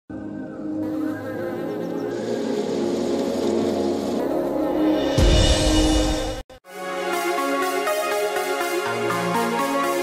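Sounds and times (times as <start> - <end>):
background music: 0.1 - 10.0.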